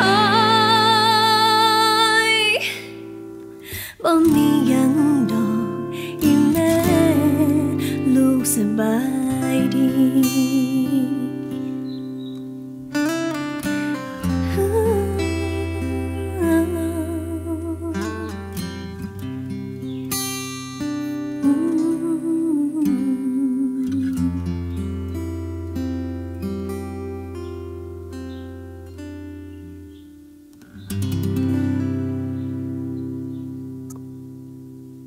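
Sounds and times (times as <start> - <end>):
woman's wordless vocal: 0.0 - 3.0, 3.6 - 11.4, 14.4 - 18.4, 21.4 - 24.5
acoustic guitar playing: 0.0 - 35.0.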